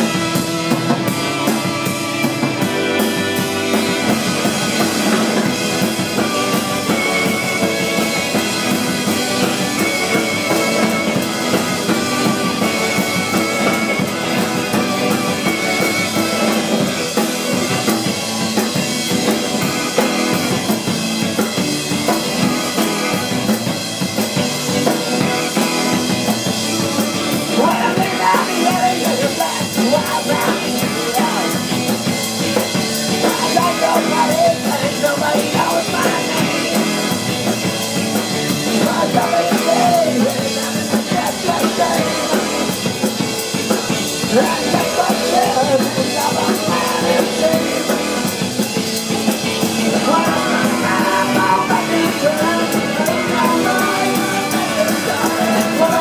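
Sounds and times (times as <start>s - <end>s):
driving drum kit: 0.0s - 56.0s
electric guitars: 0.0s - 56.0s
punk rock band playing: 0.0s - 56.0s.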